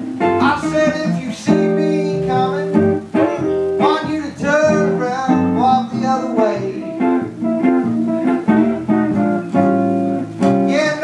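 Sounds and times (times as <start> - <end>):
archtop guitar chords: 0.0 - 11.0
man singing jazz: 0.2 - 8.7, 10.4 - 11.0.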